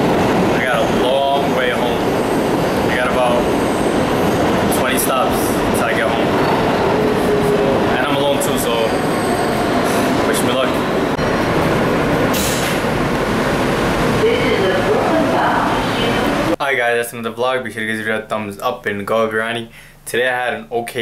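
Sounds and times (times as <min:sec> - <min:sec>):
subway train running noise: 0:00.0 - 0:16.6.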